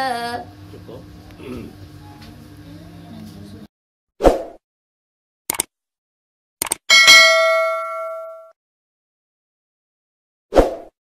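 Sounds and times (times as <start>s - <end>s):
bright bell ding: 6.9s - 8.5s.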